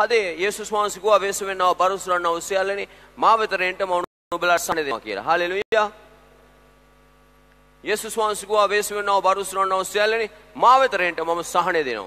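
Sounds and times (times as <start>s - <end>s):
faint electrical mains hum: 0.0s - 12.0s
man's voice: 7.9s - 12.0s.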